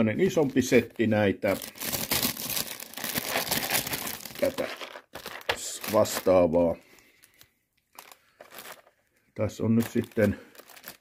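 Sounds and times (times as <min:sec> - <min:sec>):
plastic box rustling: 0:01.6 - 0:06.4, 0:08.0 - 0:09.0, 0:09.8 - 0:11.0.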